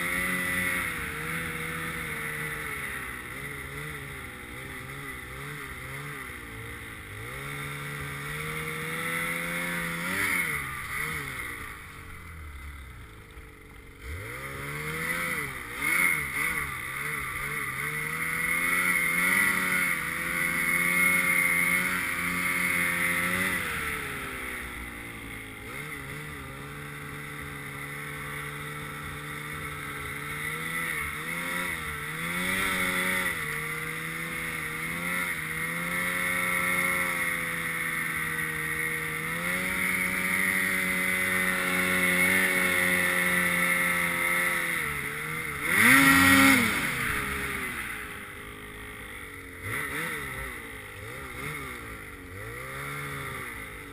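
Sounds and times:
snowmobile engine revving: 0.0s - 53.9s.

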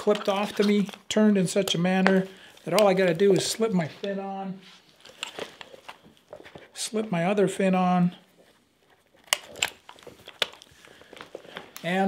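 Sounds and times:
straps rustling: 0.0s - 6.8s
clip clicking: 9.2s - 11.9s.

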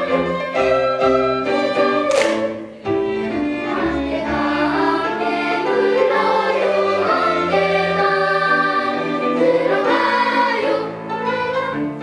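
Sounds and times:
children's choir singing: 0.0s - 12.0s
string ensemble: 0.0s - 12.0s.

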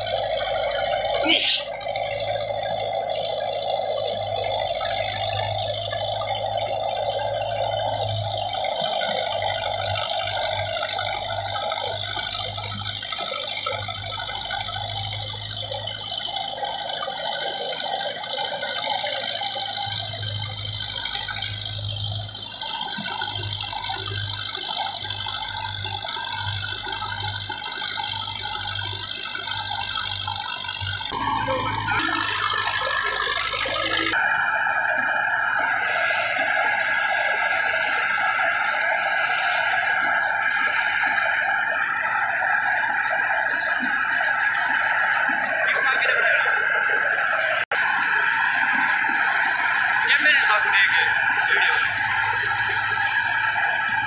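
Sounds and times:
threshing drum whine and rattle: 0.0s - 54.0s
tractor diesel engine running: 0.0s - 54.0s.

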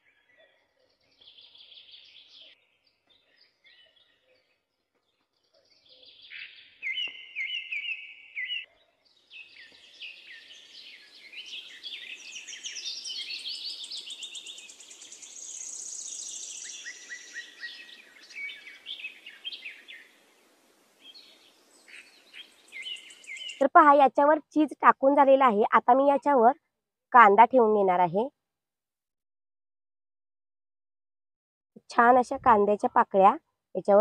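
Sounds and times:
small birds chirping: 0.0s - 23.6s.

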